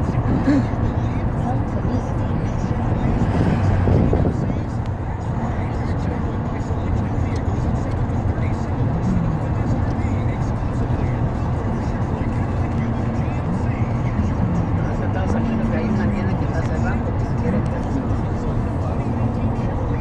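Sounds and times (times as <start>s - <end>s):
car road and engine rumble: 0.0s - 20.0s
faint indistinct voices: 0.0s - 20.0s.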